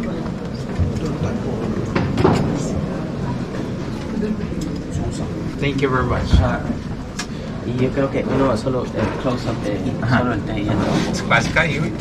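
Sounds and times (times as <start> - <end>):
airliner cabin hum: 0.0 - 12.0.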